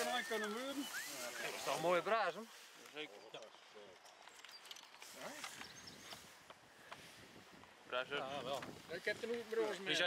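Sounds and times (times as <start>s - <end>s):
quiet outdoor ambience: 0.0s - 10.0s.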